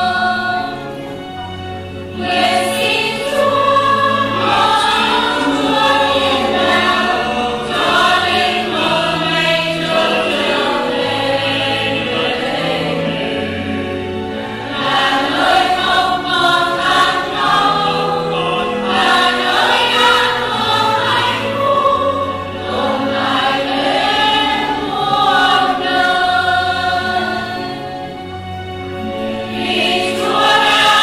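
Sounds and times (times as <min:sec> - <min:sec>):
church choir singing a hymn: 0:00.0 - 0:31.0
low accompaniment: 0:00.0 - 0:31.0.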